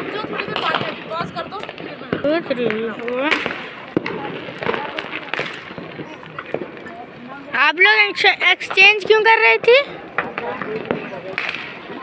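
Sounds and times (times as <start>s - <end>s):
distant firecrackers cracking: 0.0s - 12.0s
faint voices: 0.0s - 12.0s.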